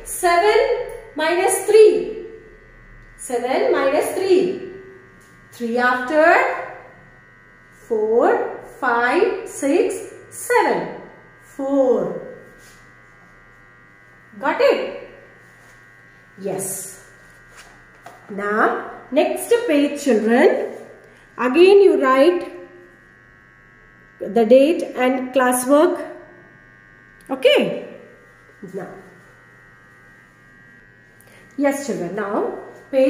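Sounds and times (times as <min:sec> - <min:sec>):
electrical hum with faint buzz: 0:00.0 - 0:33.0.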